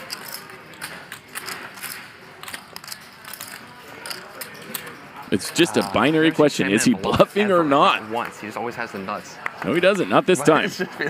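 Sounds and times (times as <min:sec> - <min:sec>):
poker chips clicking: 0:00.0 - 0:06.1.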